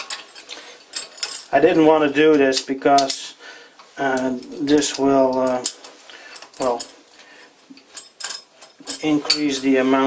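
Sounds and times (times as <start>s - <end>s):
metal bolt and washer clinking: 0.0s - 1.6s, 2.3s - 3.2s, 4.1s - 7.0s, 7.7s - 9.8s.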